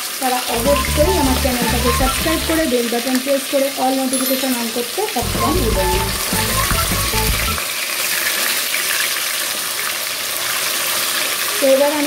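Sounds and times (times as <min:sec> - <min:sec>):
fish sizzling in oil: 0:00.0 - 0:06.5, 0:07.6 - 0:12.0.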